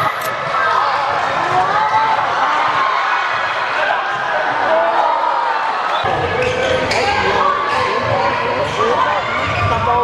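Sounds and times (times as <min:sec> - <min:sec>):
voices shouting in a sports hall: 0:00.0 - 0:10.0.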